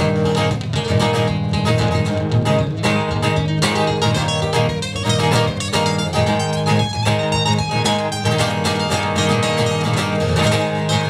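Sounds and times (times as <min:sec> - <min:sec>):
acoustic guitars strummed and picked: 0:00.0 - 0:11.0.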